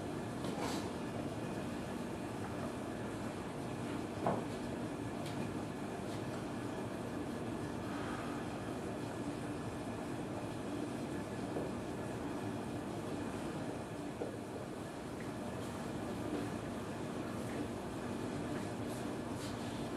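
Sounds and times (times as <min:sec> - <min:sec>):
low hum and hiss: 0:00.0 - 0:19.9.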